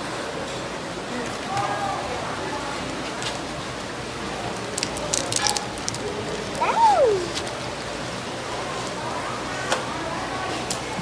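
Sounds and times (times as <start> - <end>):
water running through sluice: 4.2 - 8.0
stones clicking in plastic bag: 4.5 - 6.6
short falling voice sound: 6.6 - 7.4.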